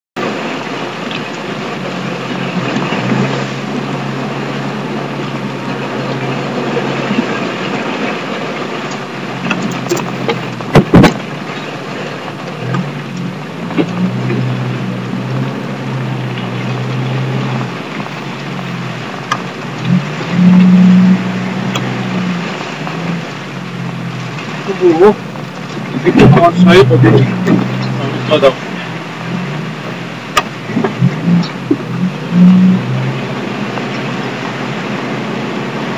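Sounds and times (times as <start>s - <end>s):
off-road car engine running: 0.2s - 35.9s.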